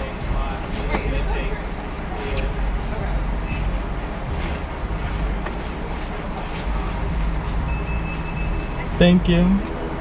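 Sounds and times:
car idling rumble: 0.0s - 10.0s.

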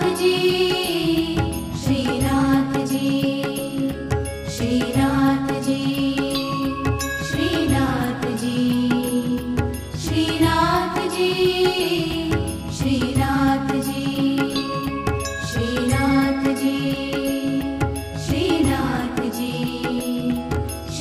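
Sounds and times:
devotional song melody: 0.0s - 21.0s
steady percussion beat: 0.0s - 21.0s.

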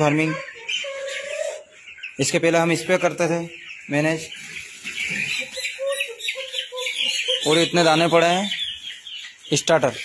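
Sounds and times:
chickens chirping: 0.0s - 10.0s
chickens clucking: 0.0s - 10.0s.

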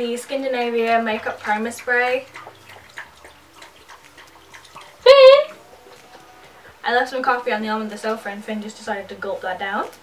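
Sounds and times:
pet lapping liquid: 0.0s - 10.0s.

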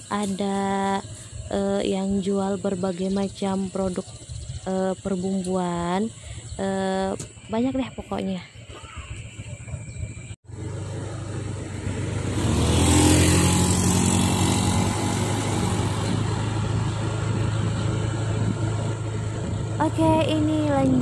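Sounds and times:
scooter engine: 7.4s - 21.0s.

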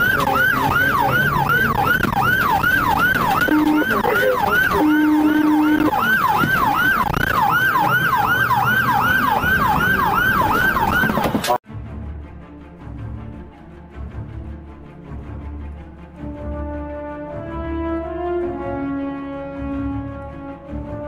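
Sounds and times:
police siren yelping: 0.0s - 11.6s.

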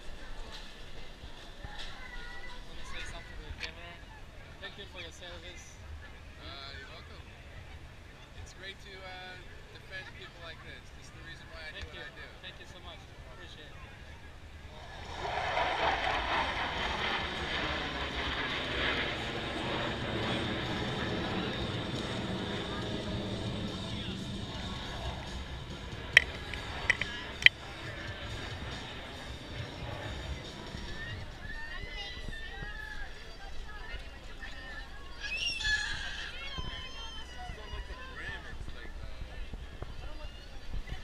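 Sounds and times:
crowd chatter: 0.0s - 41.0s
military jets flying overhead: 14.4s - 33.1s.

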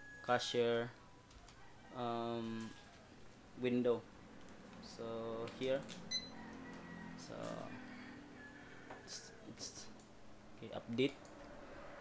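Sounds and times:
barcode scanner beep: 6.1s - 6.4s.

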